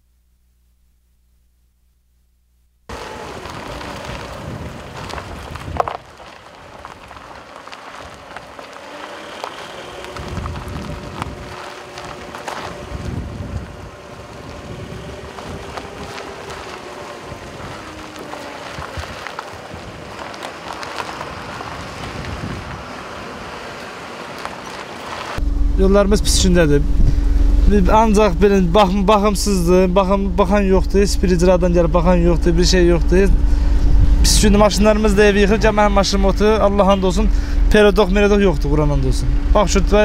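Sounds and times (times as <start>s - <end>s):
tyres crunching on gravel: 2.9s - 40.0s
wind on microphone: 3.0s - 8.6s, 9.9s - 23.0s, 25.4s - 40.0s.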